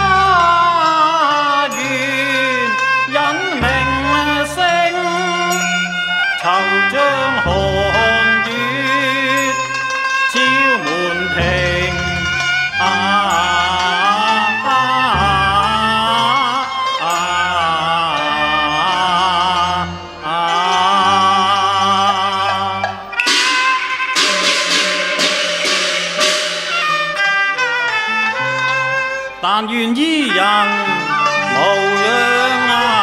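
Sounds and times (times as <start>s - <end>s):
opera singing with vibrato: 0.0s - 9.7s, 10.3s - 23.1s, 29.5s - 33.0s
ringing percussion strikes: 0.0s - 29.4s, 30.3s - 33.0s
bowed strings with sliding notes: 0.0s - 33.0s
low musical accompaniment: 0.0s - 33.0s.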